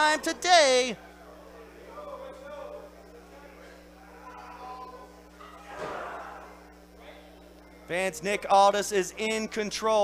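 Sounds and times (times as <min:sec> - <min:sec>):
scattered crowd voices: 0:00.0 - 0:10.0
steady electrical hum: 0:00.0 - 0:10.0.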